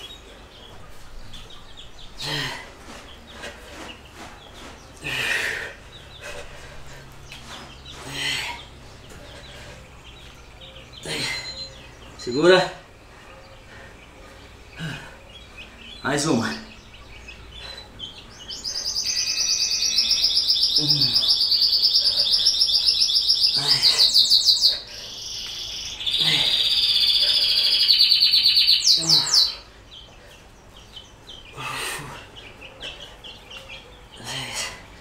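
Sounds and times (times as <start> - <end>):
songbird singing rapid high trills: 8.6 - 34.3.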